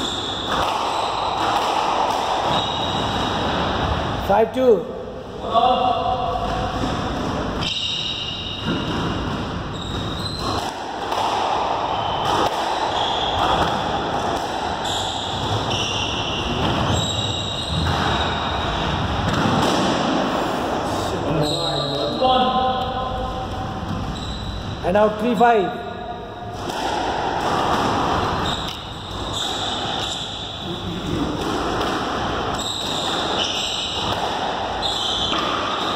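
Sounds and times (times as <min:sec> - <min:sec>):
squash ball struck by rackets: 0:00.0 - 0:04.1, 0:06.5 - 0:20.3, 0:26.5 - 0:30.5, 0:31.1 - 0:35.9
shoes squeaking on court floor: 0:02.4 - 0:03.9, 0:06.5 - 0:10.7, 0:11.9 - 0:14.0, 0:14.8 - 0:19.0, 0:21.3 - 0:24.8, 0:27.5 - 0:31.5, 0:32.3 - 0:35.9.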